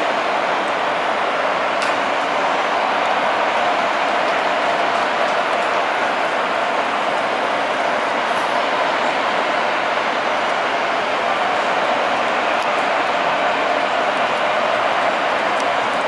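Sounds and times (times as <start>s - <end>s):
ballpark crowd noise: 0.0s - 16.0s.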